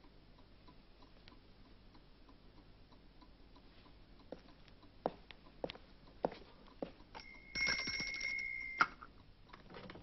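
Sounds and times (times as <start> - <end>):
hand bell ringing: 7.2 - 8.9.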